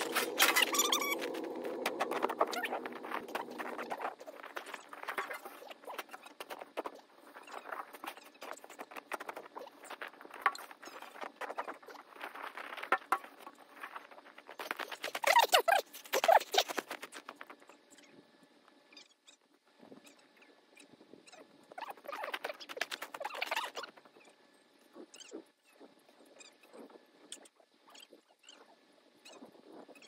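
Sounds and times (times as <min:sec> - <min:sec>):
sped-up snow shovelling crunches: 0:00.0 - 0:17.6.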